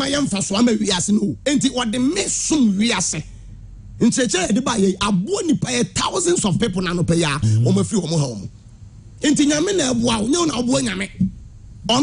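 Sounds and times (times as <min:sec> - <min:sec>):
man talking fast: 0:00.0 - 0:03.3, 0:04.0 - 0:08.5, 0:09.2 - 0:12.0.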